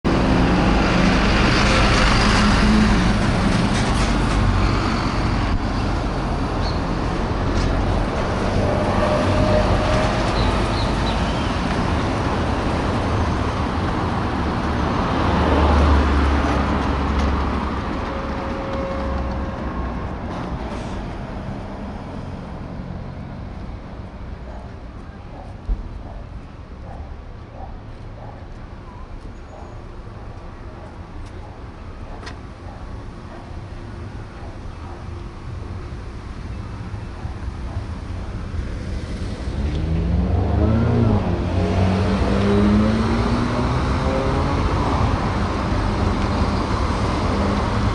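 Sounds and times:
street traffic rumble: 0.0s - 47.9s
vehicle engine accelerating: 38.7s - 47.9s.

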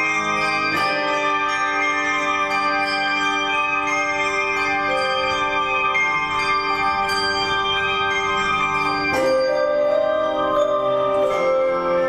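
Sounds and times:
handbells ringing: 0.0s - 12.0s.

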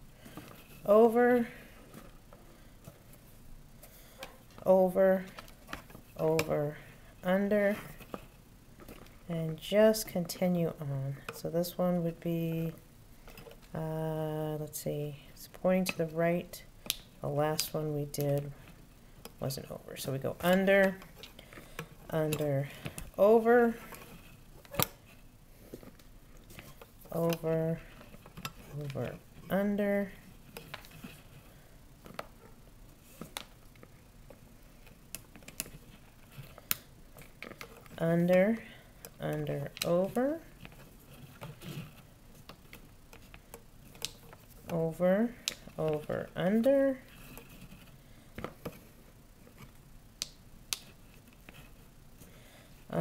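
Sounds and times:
cord rustling: 0.1s - 10.4s, 17.6s - 49.9s.

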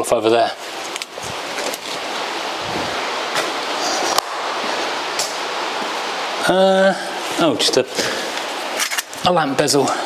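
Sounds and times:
rain on roof: 0.5s - 10.0s.

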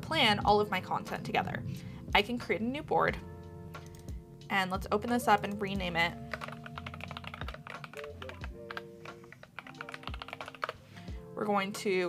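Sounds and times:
soft background music: 0.0s - 12.0s
keyboard typing: 6.3s - 10.8s.

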